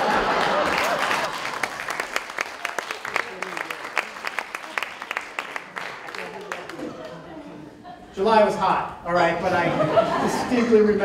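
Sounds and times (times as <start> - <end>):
audience laughter: 0.0 - 1.9, 5.8 - 8.2, 9.4 - 11.0
audience applause: 0.0 - 7.4.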